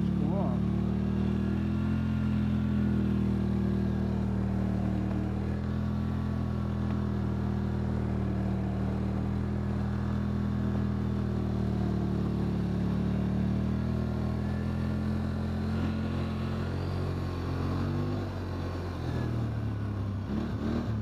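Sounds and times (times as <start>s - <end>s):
atv engine running: 0.0s - 21.0s.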